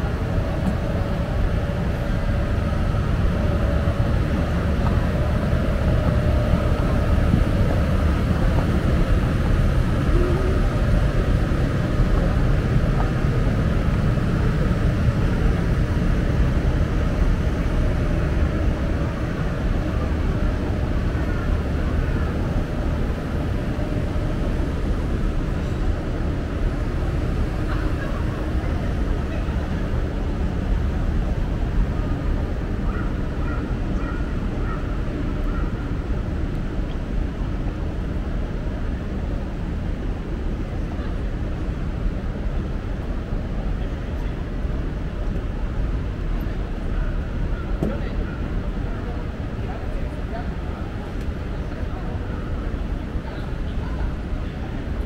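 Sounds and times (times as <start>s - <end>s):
distant traffic hum: 0.0s - 55.0s
machinery hum: 0.0s - 55.0s.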